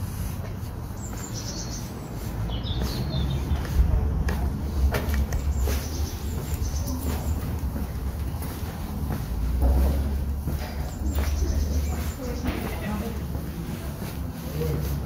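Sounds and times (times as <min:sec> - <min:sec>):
footsteps on pavement: 0:00.0 - 0:15.0
wind rumble on microphone: 0:02.8 - 0:08.0.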